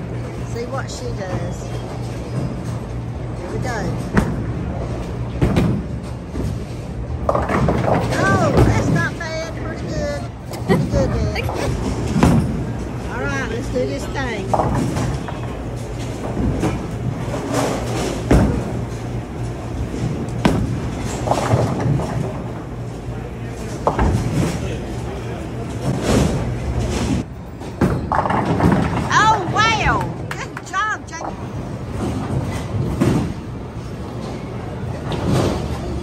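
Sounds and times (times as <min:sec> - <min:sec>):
bowling pins clattering: 0:00.4 - 0:36.0
bowling ball rolling: 0:04.0 - 0:30.6.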